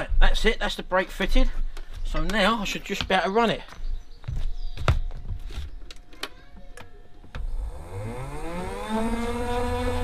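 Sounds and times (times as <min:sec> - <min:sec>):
electric motor whine: 0:07.4 - 0:10.0.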